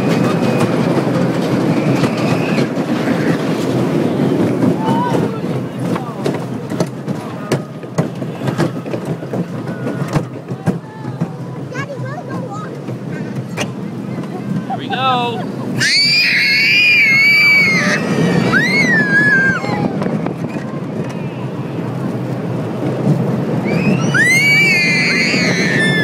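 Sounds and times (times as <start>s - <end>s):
roller coaster rumbling on track: 0.0s - 26.0s.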